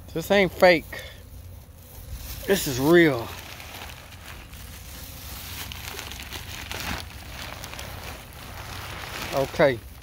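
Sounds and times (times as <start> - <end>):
plastic bag crinkling: 0.2 - 10.0.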